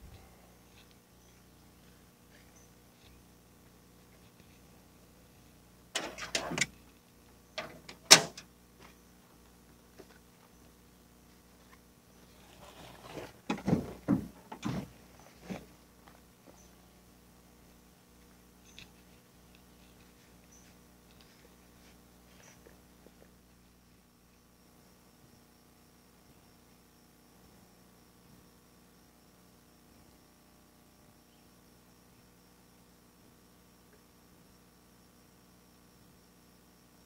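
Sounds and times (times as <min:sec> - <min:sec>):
gear clattering in truck bed: 0:06.0 - 0:06.7, 0:07.6 - 0:08.4, 0:12.9 - 0:14.9.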